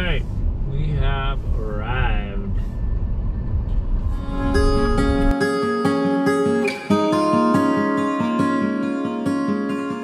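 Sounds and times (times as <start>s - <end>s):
car rumbling from inside: 0.0s - 5.4s
acoustic guitar music: 4.0s - 10.0s.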